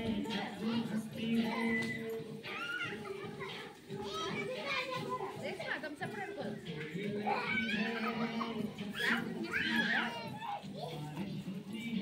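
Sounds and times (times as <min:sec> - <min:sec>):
children chattering and squealing: 0:00.0 - 0:12.0.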